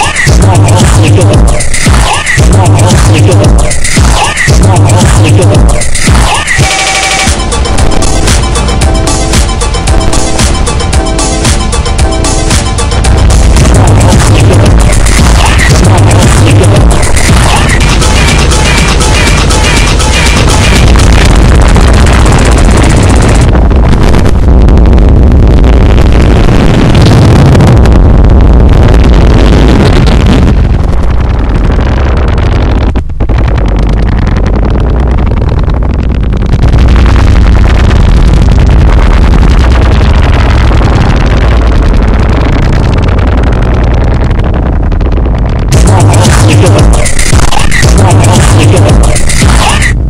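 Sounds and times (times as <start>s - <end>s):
dense distorted noise: 0.0s - 50.0s
heavy low rumble: 0.0s - 50.0s.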